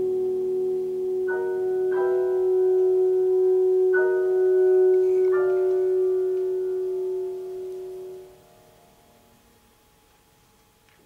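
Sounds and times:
alto saxophone sustained note: 0.0 - 9.3
piano: 0.0 - 11.0.

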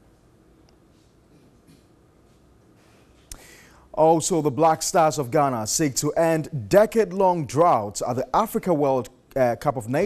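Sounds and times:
short intake of breath: 2.8 - 3.9.

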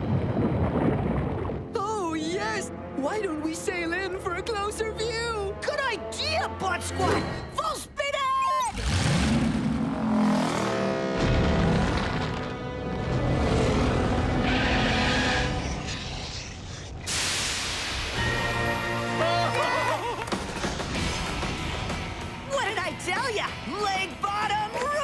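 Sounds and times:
dramatic cartoon music: 1.6 - 17.0, 18.0 - 25.0
rumbling booming sound effects: 11.1 - 13.6.

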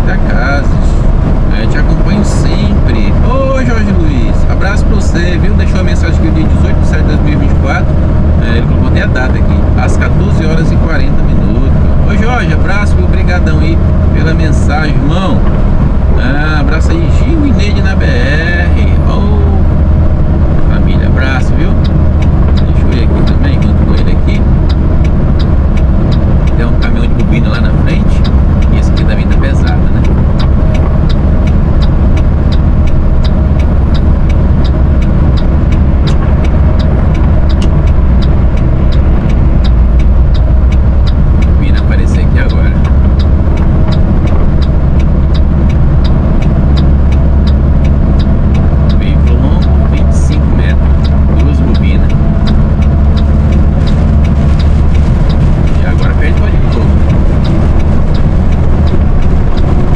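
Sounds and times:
road noise inside cab: 0.0 - 59.9
truck diesel engine drone: 0.0 - 59.9.

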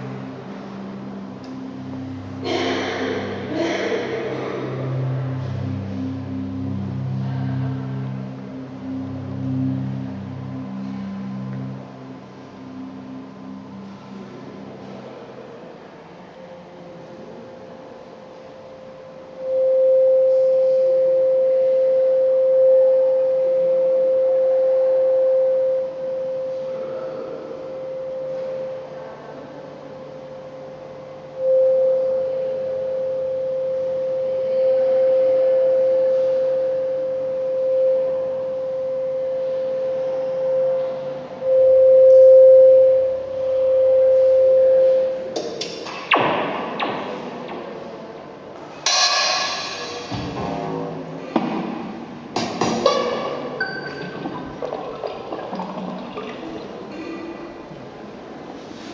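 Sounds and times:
electronic sine tone: 4.8 - 15.0, 18.4 - 48.1, 52.4 - 57.0.

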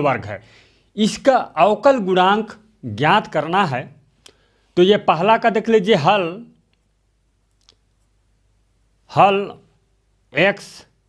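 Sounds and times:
man speaking: 0.0 - 0.4, 1.0 - 4.0, 4.8 - 6.6, 9.1 - 9.7, 10.3 - 11.0.

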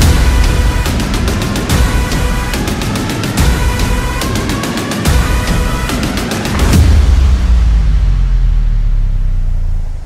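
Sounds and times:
deep bass rumble: 6.5 - 10.0.

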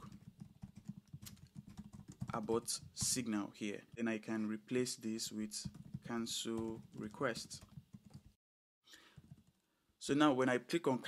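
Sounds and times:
computer keyboard typing: 0.0 - 3.2, 5.6 - 8.4, 9.2 - 9.6.

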